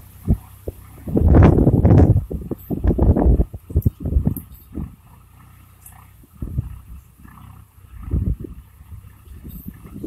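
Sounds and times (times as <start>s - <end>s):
tractor diesel engine running: 0.0s - 10.0s
wind buffeting microphone: 0.0s - 10.0s.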